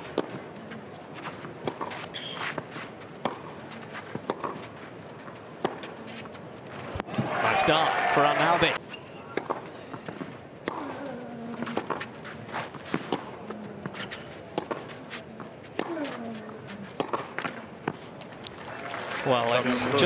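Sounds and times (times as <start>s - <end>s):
racket striking ball: 4.1s - 4.6s, 9.3s - 12.1s, 17.0s - 18.0s
ball bounces: 9.3s - 11.0s, 17.0s - 18.0s
crowd murmur: 18.0s - 20.0s.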